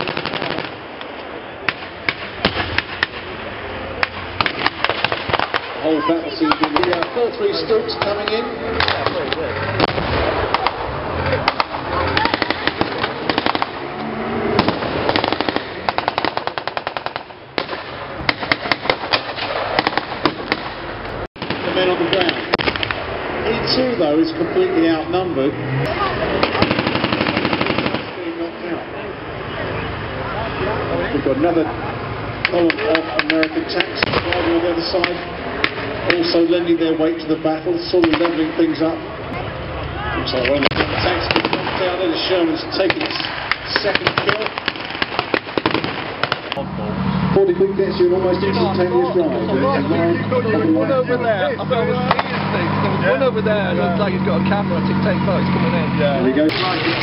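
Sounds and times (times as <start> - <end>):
machine-gun fire: 0.0 - 0.8, 4.0 - 5.8, 6.5 - 7.3, 8.0 - 13.8, 14.5 - 23.0, 26.4 - 28.4, 38.0 - 38.5, 40.6 - 42.2, 42.8 - 46.6, 56.5 - 57.0
background noise: 0.0 - 57.0
blank gunfire cracks: 42.8 - 46.6.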